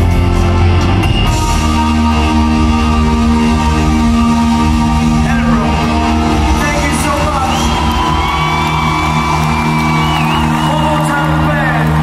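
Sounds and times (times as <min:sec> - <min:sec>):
high held guitar notes: 0:00.0 - 0:11.5
live rock band playing: 0:00.0 - 0:12.0.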